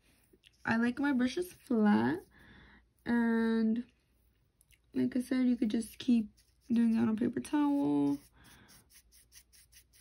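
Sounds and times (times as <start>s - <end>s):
brush scratching on paper towel: 5.6s - 10.0s.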